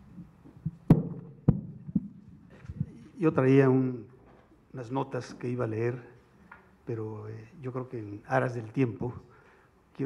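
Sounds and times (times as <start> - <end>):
microphone handling knocks: 0.5 - 3.0.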